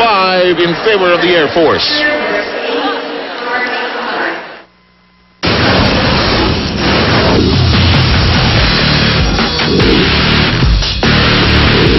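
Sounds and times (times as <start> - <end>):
arena crowd noise: 0.0 - 4.8
sudden loud boom: 5.4 - 11.9
hard-driving bumper music: 6.7 - 11.9.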